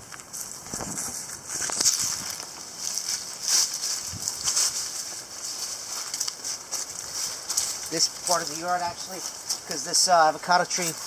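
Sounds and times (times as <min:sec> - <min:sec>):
footsteps on dry leaves and mulch: 0:00.0 - 0:11.0
leaves brushing past: 0:00.0 - 0:11.0.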